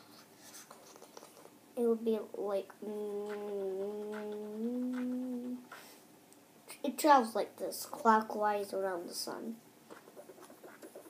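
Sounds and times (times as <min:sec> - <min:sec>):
child humming a held note: 0:02.8 - 0:05.8.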